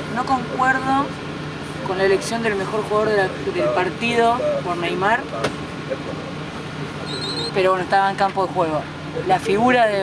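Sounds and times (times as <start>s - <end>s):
bus running noise: 0.0s - 10.0s.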